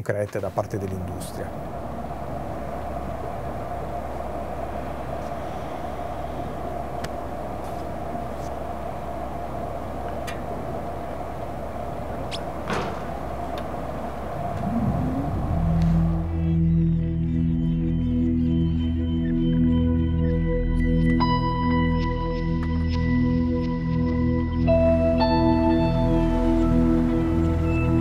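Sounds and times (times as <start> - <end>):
mechanical drone: 0.6 - 21.0
low wavering tone: 1.2 - 28.0.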